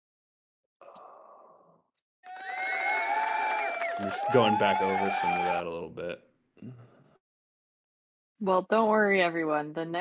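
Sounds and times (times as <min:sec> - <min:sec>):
faint breathy sigh: 0:00.8 - 0:01.8.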